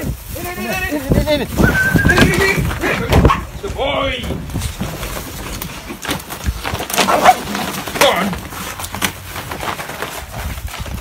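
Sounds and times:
knocks and scuffling: 0.0 - 11.0.

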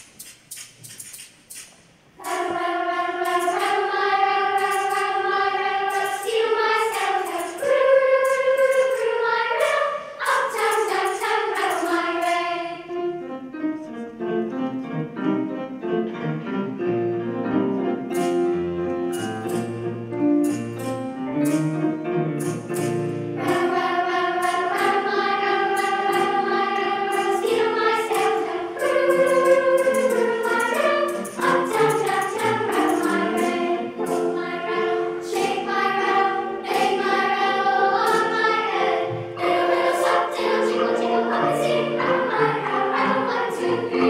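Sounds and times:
grand piano: 1.9 - 44.0
children's choir singing: 2.2 - 14.6, 22.7 - 44.0.

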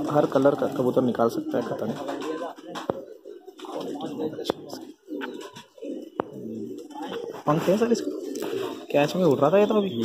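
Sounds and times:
pigeons cooing: 0.0 - 10.0.

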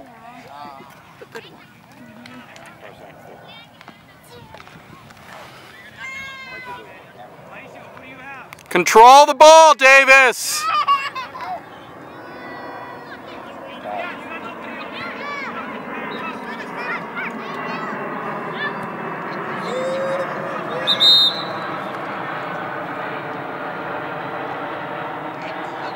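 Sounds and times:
players and coaches shouting: 5.9 - 7.1, 8.1 - 10.9, 19.5 - 21.8.

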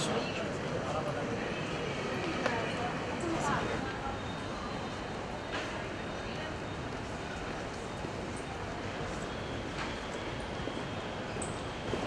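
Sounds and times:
distant crowd noise: 0.0 - 12.0.

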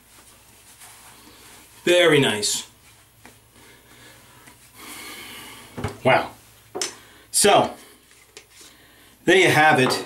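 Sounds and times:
man's breath hissing: 3.8 - 5.8.

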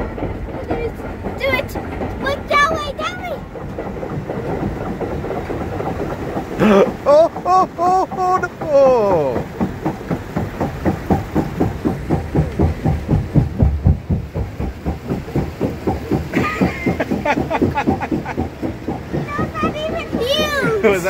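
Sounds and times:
raft clacking on roller conveyor: 0.0 - 21.0.

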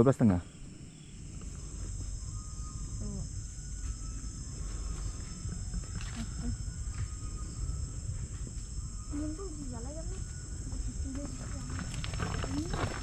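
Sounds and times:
high-pitched insect chorus: 0.0 - 13.0
low microphone rumble: 0.7 - 13.0.

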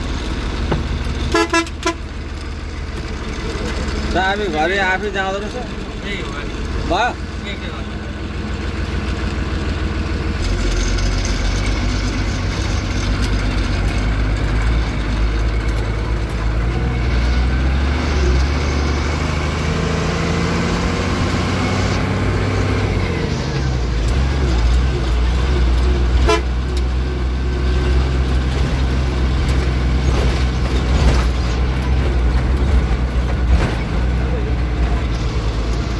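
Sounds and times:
truck engine from inside cab: 0.0 - 35.9.

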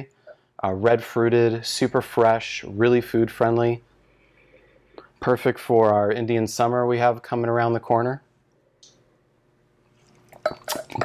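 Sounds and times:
person sipping and slurping wine: 10.0 - 11.0.

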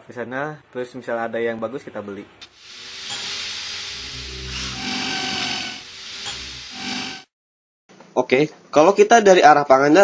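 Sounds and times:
long hissing swish: 2.5 - 7.3.

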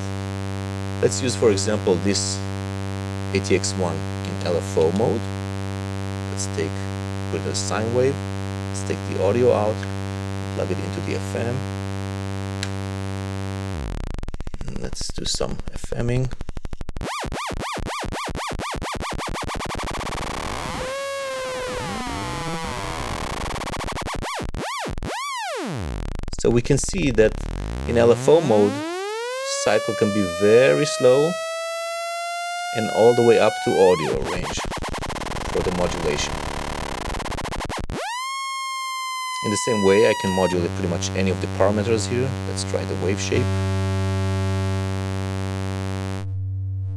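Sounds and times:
synthesizer tone wobbling in pitch: 20.1 - 25.8, 27.3 - 40.7.

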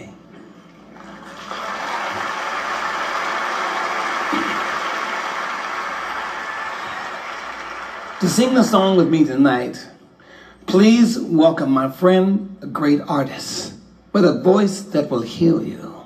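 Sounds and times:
audience applauding: 1.0 - 9.1.

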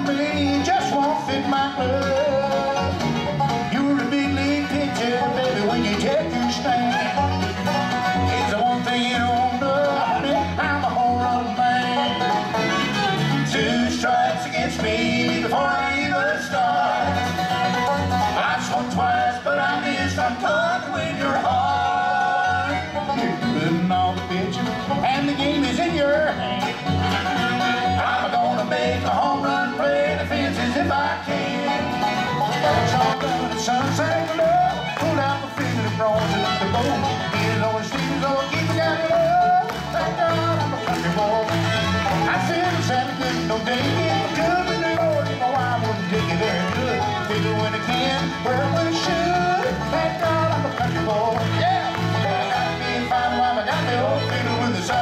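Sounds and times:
bluegrass band playing: 0.0 - 55.0
bouncing bass line: 0.0 - 55.0.

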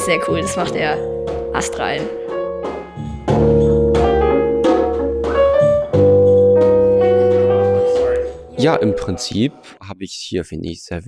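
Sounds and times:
keyboard chords: 0.0 - 9.4.

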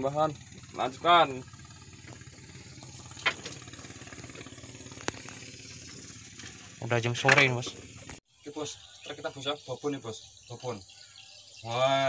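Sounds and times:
small engine humming: 0.0 - 12.0.

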